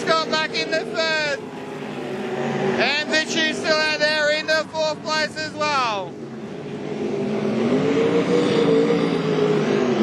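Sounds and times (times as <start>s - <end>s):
race car engine under throttle: 0.0s - 10.0s.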